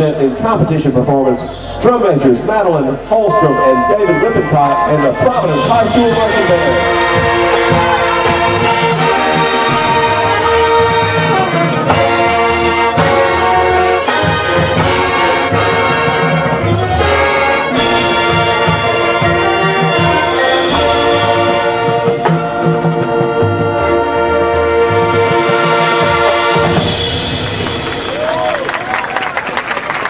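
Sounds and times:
brass sustained chords: 0:01.0 - 0:28.2
drum and percussion strikes: 0:03.3 - 0:24.0, 0:25.1 - 0:28.7.

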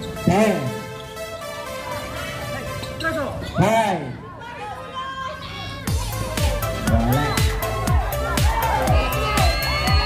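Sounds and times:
background music: 0:00.0 - 0:04.9, 0:05.8 - 0:10.0
crowd chatter: 0:00.0 - 0:10.0.

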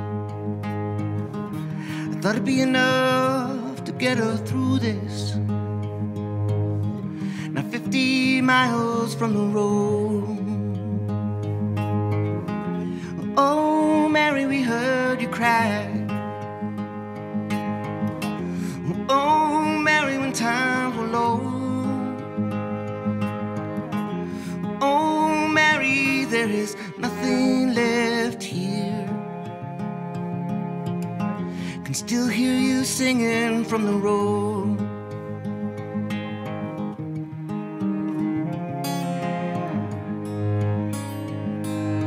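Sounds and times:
acoustic guitar accompaniment: 0:00.0 - 0:42.0
cello melody with vibrato: 0:00.0 - 0:42.0.

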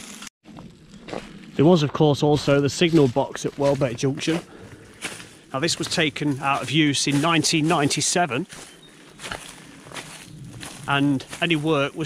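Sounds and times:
soft footsteps: 0:00.5 - 0:12.0
man's voice: 0:01.6 - 0:04.5, 0:05.5 - 0:08.5, 0:10.9 - 0:12.0.

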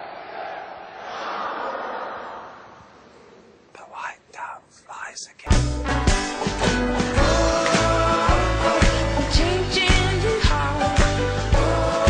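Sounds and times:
soft whispers: 0:02.8 - 0:05.5
crowd noise: 0:05.9 - 0:10.4.

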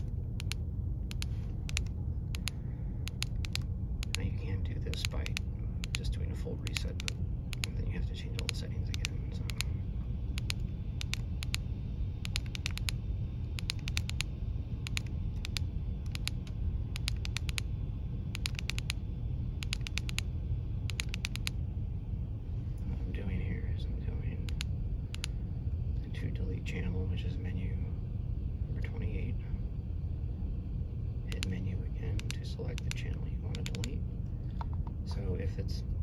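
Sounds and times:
radio keypad buttons clicking: 0:00.0 - 0:02.5, 0:03.1 - 0:04.2, 0:12.2 - 0:13.0, 0:13.6 - 0:14.3, 0:14.9 - 0:17.6, 0:18.4 - 0:19.0, 0:19.6 - 0:20.2, 0:20.9 - 0:21.5
steady low rumble: 0:00.0 - 0:36.0.

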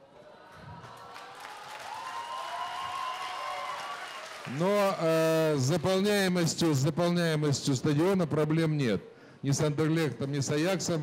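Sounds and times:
audience applauding: 0:00.8 - 0:05.0.

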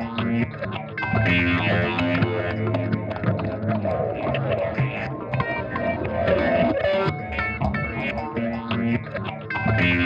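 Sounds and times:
low droning guitar notes: 0:00.0 - 0:10.0
picked electric guitar notes: 0:00.0 - 0:10.0.

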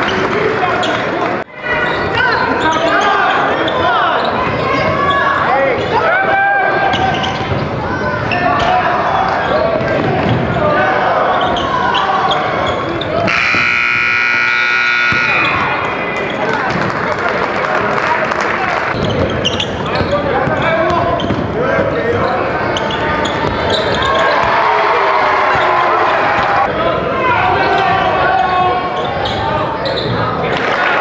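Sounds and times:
crowd noise: 0:00.0 - 0:31.0
basketball bouncing: 0:13.3 - 0:15.6
scoreboard horn: 0:13.3 - 0:15.8
sneakers squeaking on court: 0:18.9 - 0:24.5.

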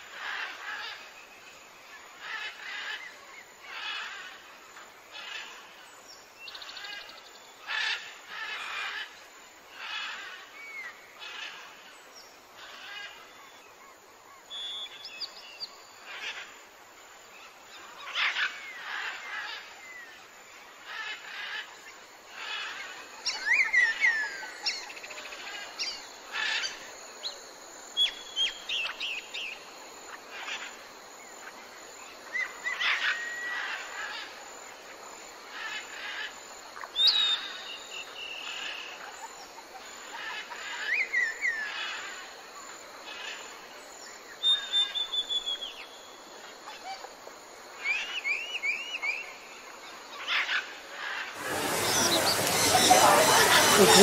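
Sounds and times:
faint steady hiss: 0:00.0 - 0:54.0
birds chirping and whistling: 0:51.4 - 0:54.0.

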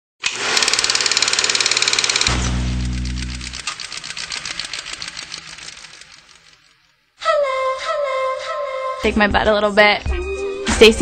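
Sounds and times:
fast mechanical rattle: 0:00.2 - 0:07.0.

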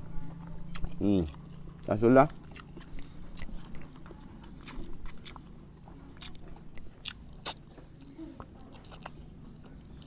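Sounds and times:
person chewing food: 0:00.0 - 0:10.0
wet mouth clicks: 0:02.4 - 0:05.5, 0:06.2 - 0:09.2.

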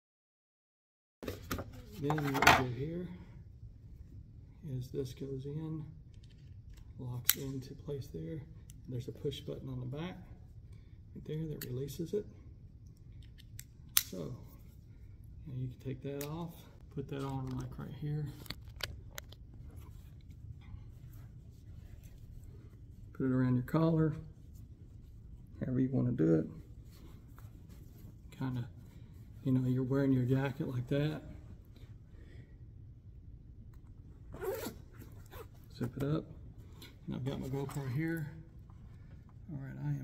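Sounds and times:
jacket zipper pulled up: 0:34.3 - 0:35.8.

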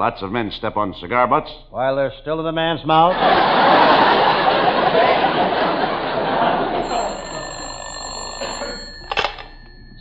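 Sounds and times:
audience laughter: 0:03.1 - 0:07.6
telephone bell ringing: 0:06.4 - 0:10.0.

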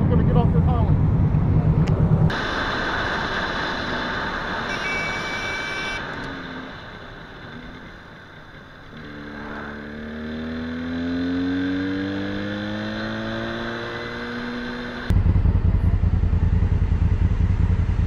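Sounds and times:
wind and road noise: 0:00.0 - 0:18.0
motorcycle engine accelerating: 0:06.0 - 0:18.0.

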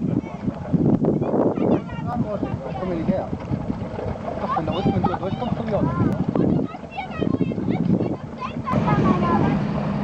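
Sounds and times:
wind rumble on microphone: 0:00.0 - 0:10.0
people talking over one another: 0:01.2 - 0:09.6.

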